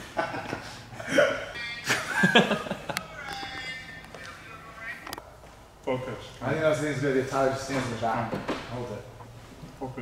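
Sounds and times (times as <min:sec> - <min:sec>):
people laughing: 0:00.0 - 0:03.2.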